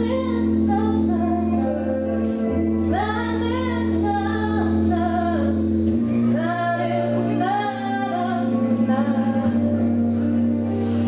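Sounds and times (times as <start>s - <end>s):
woman singing pop ballad: 0.0s - 2.0s, 2.8s - 10.0s
instrumental accompaniment: 0.0s - 11.0s.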